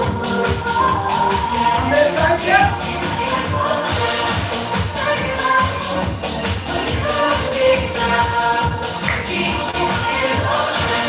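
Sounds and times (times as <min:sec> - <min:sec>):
upbeat dance music: 0:00.0 - 0:11.0.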